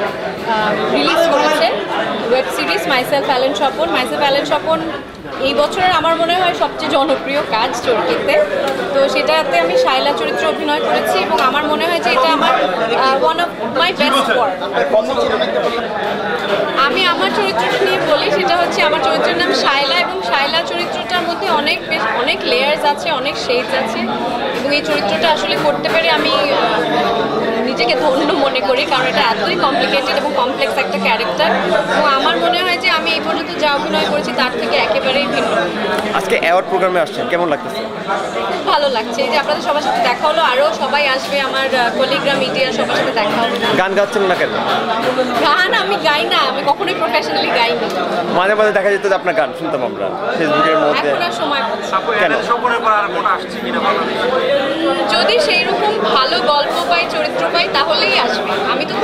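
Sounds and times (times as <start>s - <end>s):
people chattering: 0.0s - 59.0s.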